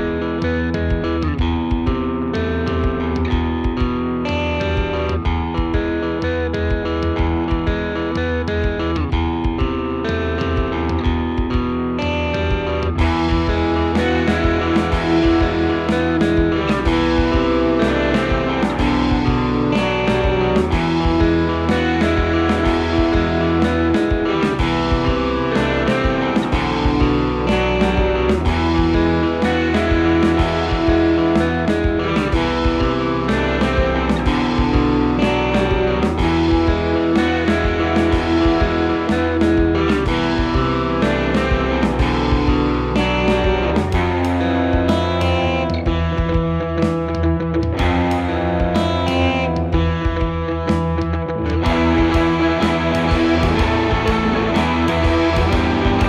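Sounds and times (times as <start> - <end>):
overdriven electric guitar song: 0.0 - 56.0
steady beat: 0.0 - 56.0.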